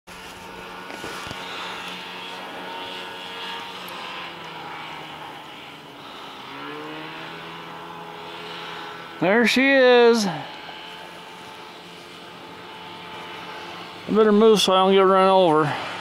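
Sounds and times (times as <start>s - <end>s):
snowmobile engine revving: 0.1s - 16.0s.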